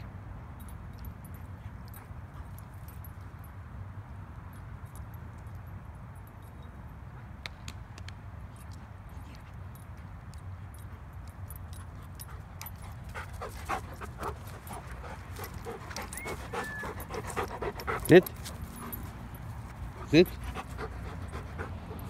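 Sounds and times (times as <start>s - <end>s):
dog panting: 10.7s - 22.0s.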